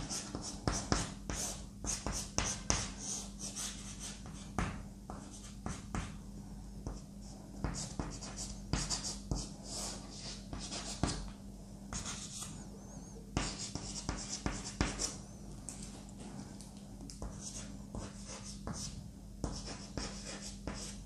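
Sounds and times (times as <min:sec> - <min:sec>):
low steady hum: 0:00.0 - 0:21.0
chalk scratching on chalkboard: 0:13.4 - 0:15.2, 0:17.2 - 0:21.0.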